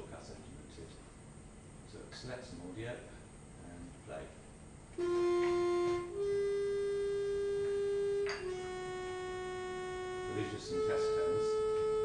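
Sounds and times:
buzzy held tones from speakers: 0:00.0 - 0:12.0.

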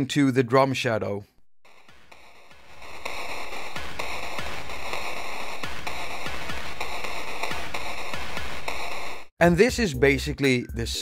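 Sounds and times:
crunchy reverberant drum loop: 0:01.7 - 0:09.3.

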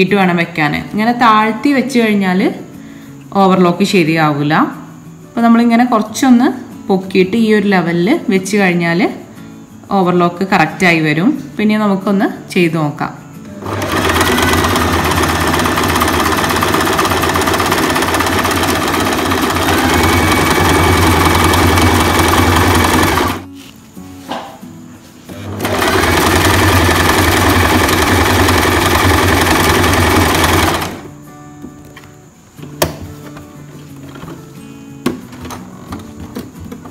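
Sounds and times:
sewing machine stitching: 0:13.6 - 0:23.4, 0:25.3 - 0:31.1.

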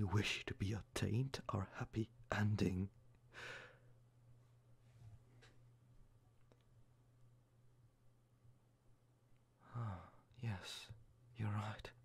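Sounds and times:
faint low hum: 0:00.0 - 0:12.0
man breathing: 0:03.3 - 0:04.0, 0:09.6 - 0:10.2.

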